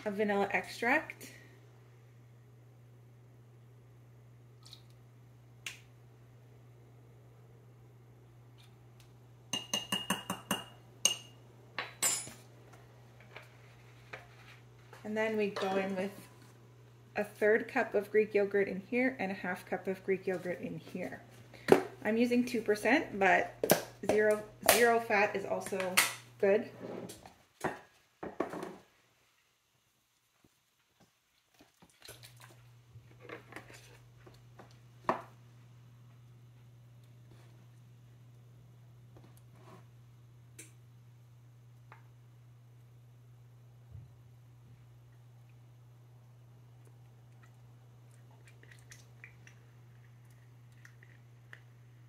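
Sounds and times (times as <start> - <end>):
faint low hum: 29.0 - 52.0.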